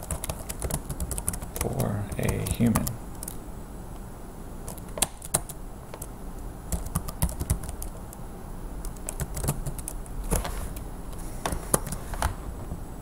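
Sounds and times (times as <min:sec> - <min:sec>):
computer keyboard keystroke clicks: 0:06.7 - 0:08.0, 0:08.8 - 0:10.0.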